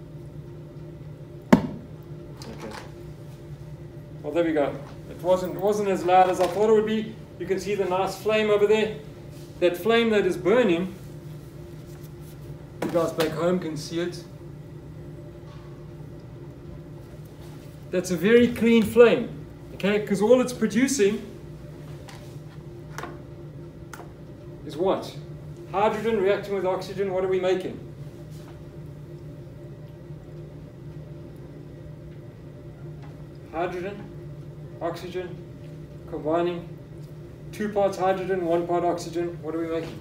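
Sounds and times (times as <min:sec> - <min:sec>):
steady low hum: 0:00.0 - 0:40.0
man talking: 0:04.2 - 0:09.0, 0:09.6 - 0:11.0, 0:17.9 - 0:21.3.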